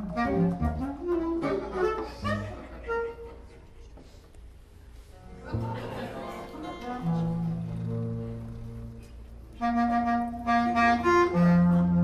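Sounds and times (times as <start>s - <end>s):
bass clarinet held notes: 0.0s - 3.5s, 6.7s - 12.0s.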